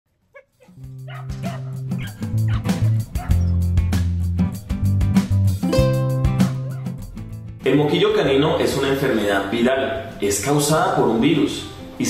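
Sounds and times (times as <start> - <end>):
dog barking: 0.3 - 3.6
background music with light beats: 0.8 - 8.0.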